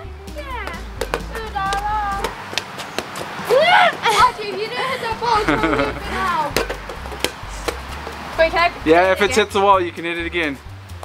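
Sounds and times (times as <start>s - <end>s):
ball slapping and bouncing: 0.6s - 3.4s, 6.5s - 8.3s
girls squealing: 3.4s - 6.5s
loud shout: 3.5s - 6.4s.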